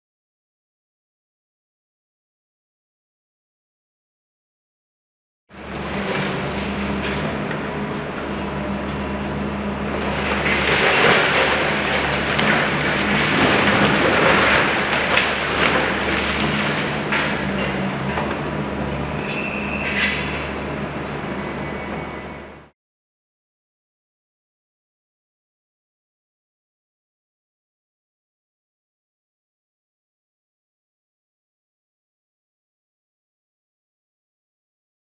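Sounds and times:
diesel engine drone: 0:05.5 - 0:22.7
concrete breaking and rubble falling: 0:09.9 - 0:18.4
high metallic squeal: 0:19.2 - 0:20.5.

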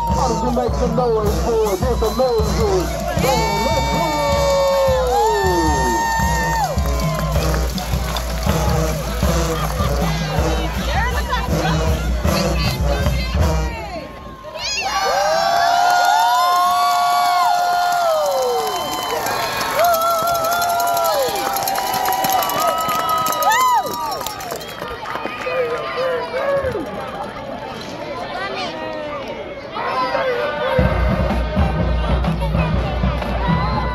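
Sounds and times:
marching band playing: 0:00.0 - 0:14.2, 0:30.7 - 0:33.9
crowd cheering and yelling: 0:00.0 - 0:33.9.

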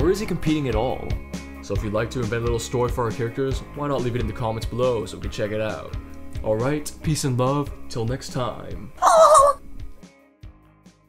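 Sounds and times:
high-pitched quavering laugh: 0:09.0 - 0:09.6.

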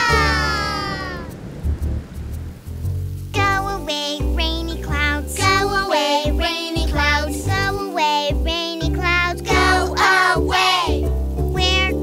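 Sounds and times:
animated toddler wailing: 0:00.0 - 0:01.4
children's song music: 0:00.0 - 0:01.4, 0:03.2 - 0:12.0
low rumble: 0:00.0 - 0:05.8.

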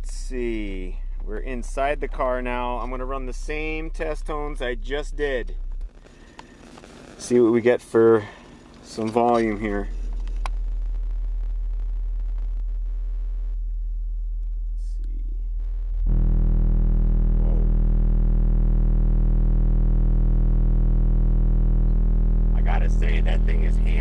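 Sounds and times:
subwoofer deep bass tone: 0:00.0 - 0:07.4, 0:08.2 - 0:24.0.

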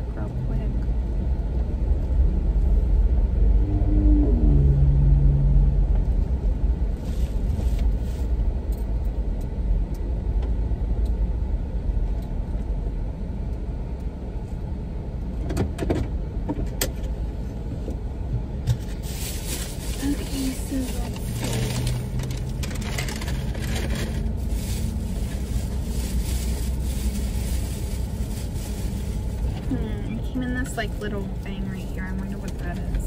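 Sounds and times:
car engine and road rumble: 0:00.0 - 0:33.0
paper bag rustling: 0:18.9 - 0:29.9.

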